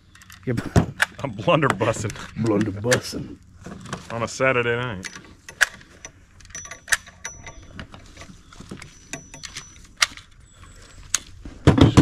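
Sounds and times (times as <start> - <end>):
metal and wood clicks and knocks: 5.0 - 12.0.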